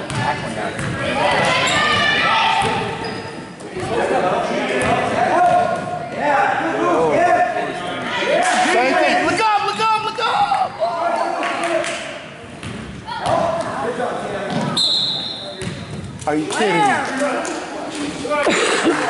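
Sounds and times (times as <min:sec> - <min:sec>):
referee whistle blast: 0:14.8 - 0:15.6.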